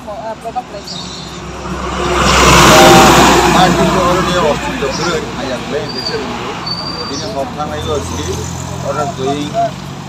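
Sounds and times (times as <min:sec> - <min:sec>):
truck passing loudly: 0:00.6 - 0:10.0.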